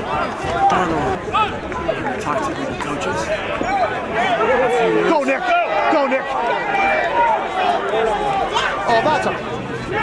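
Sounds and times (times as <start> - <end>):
spectators shouting and cheering: 0.0 - 10.0.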